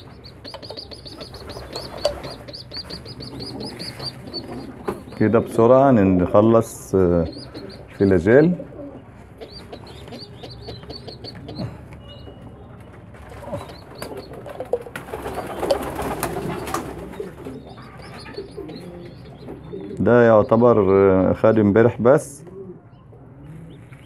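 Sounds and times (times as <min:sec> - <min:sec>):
pigeon chicks peeping: 0:00.0 - 0:24.0.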